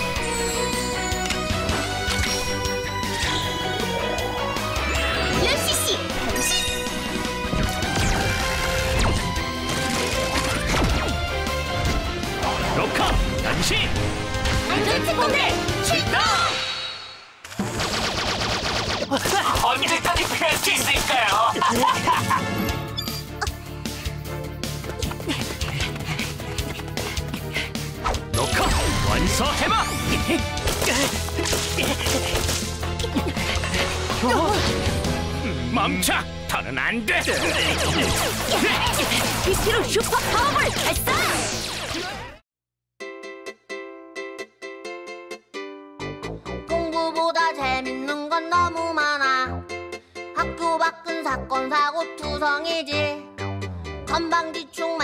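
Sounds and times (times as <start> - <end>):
action music: 0.0 - 42.4.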